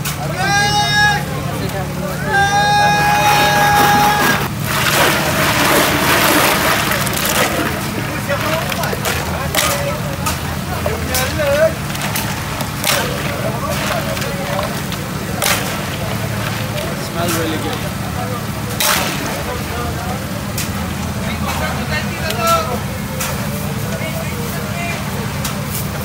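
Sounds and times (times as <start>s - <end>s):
crowd chatter: 0.0s - 26.0s
drink sloshing: 2.9s - 21.8s
ice cubes clattering: 3.0s - 18.1s.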